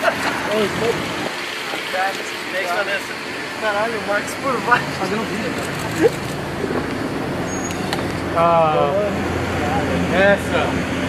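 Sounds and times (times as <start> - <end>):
car engine idling: 0.0 - 11.0
street traffic: 0.0 - 11.0.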